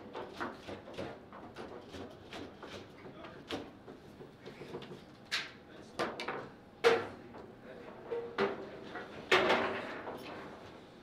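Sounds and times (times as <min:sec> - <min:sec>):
foosball table knocks and clatters: 0:09.3 - 0:10.2.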